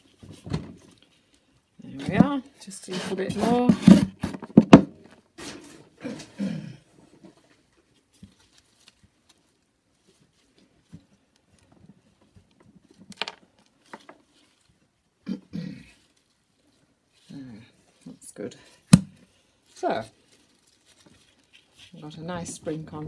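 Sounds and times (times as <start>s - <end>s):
compost scooped into plastic pot: 2.0s - 4.6s.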